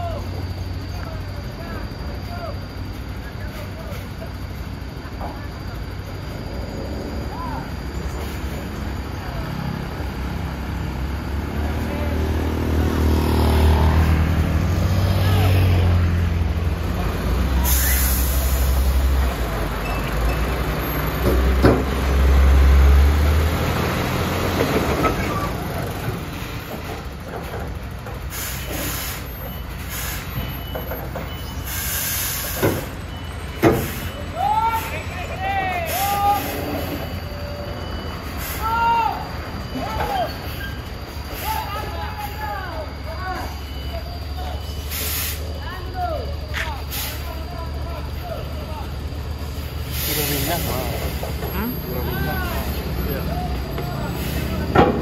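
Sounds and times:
truck diesel engine under load: 0.0s - 55.0s
air brake hiss: 17.6s - 19.1s, 28.3s - 30.6s, 31.4s - 33.0s, 33.7s - 34.2s, 35.9s - 37.1s, 38.2s - 38.9s, 44.8s - 45.6s, 46.8s - 47.4s, 49.8s - 51.2s.

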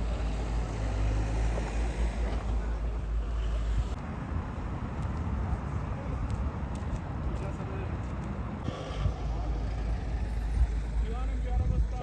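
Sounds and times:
wind buffeting microphone: 8.0s - 12.0s.

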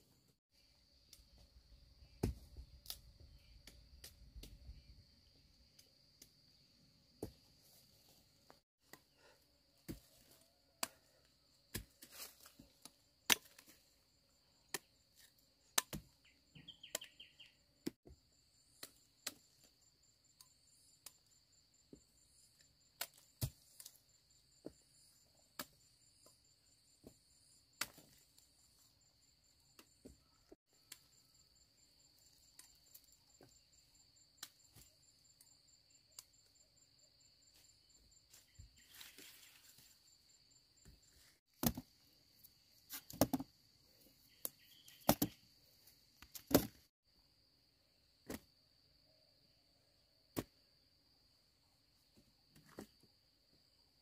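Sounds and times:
machete chopping stalks: 13.3s - 13.8s, 46.3s - 46.9s.

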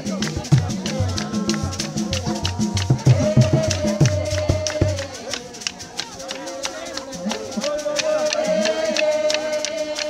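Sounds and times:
drumming: 0.0s - 10.0s
rattles shaken in steady beat: 0.0s - 10.0s.

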